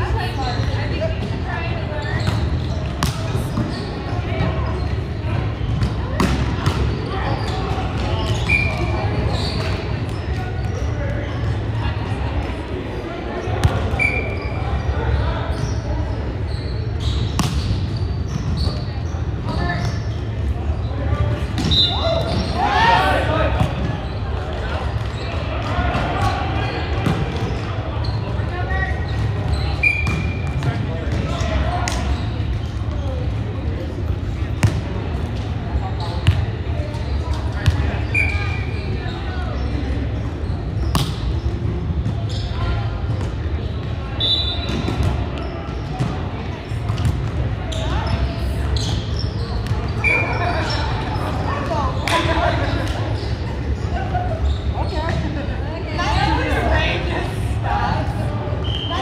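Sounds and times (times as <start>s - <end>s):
players' voices: 0.0s - 59.0s
volleyball slaps and bounces: 2.2s - 3.7s, 5.7s - 7.0s, 17.3s - 17.8s, 21.5s - 22.4s, 29.9s - 32.2s, 34.6s - 35.5s, 40.8s - 41.4s.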